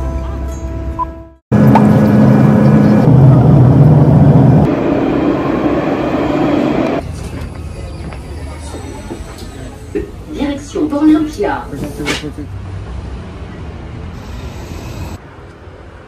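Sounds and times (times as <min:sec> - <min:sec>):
tram hum: 0:00.0 - 0:16.0
jet cabin drone: 0:01.5 - 0:07.0.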